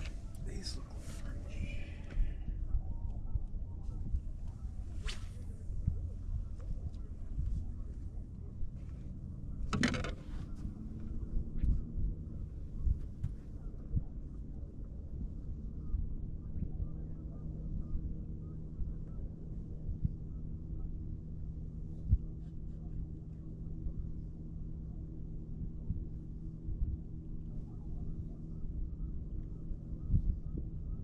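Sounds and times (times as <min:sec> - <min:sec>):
faint steady hum: 0:00.0 - 0:31.0
wind rumble on microphone: 0:00.0 - 0:31.0
fishing rod swish: 0:04.9 - 0:05.6.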